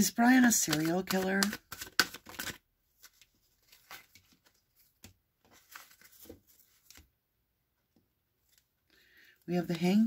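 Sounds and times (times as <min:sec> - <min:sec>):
cards shuffling snaps: 0:00.4 - 0:03.2.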